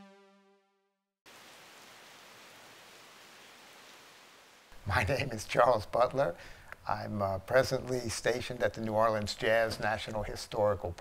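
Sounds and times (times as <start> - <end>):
rain on wooden boards: 1.3 - 5.0.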